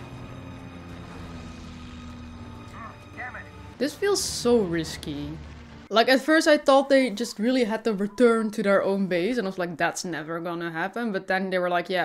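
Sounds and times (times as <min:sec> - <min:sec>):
propeller plane engines droning: 0:00.0 - 0:06.6.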